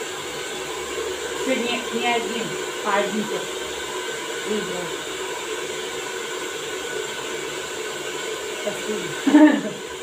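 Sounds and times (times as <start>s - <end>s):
hair dryer running: 0.0s - 10.0s.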